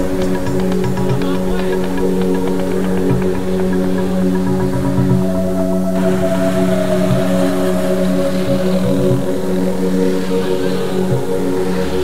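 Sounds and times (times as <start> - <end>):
electronic music with synth notes: 0.0 - 12.0.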